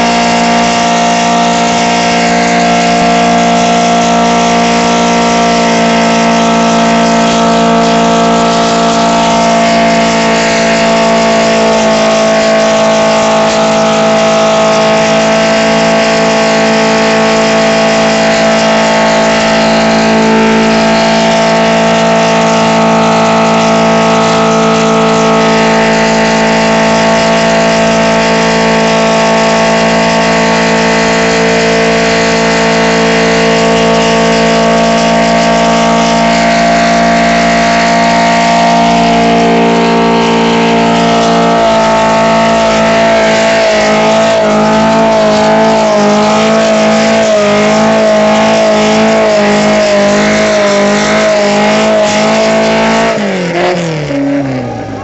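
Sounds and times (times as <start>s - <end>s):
car engine revving high: 0.0s - 55.0s
tyres spinning: 30.0s - 55.0s.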